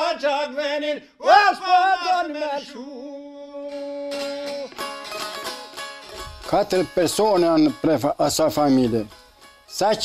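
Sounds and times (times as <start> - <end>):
long-necked lute strumming: 3.4 - 10.0.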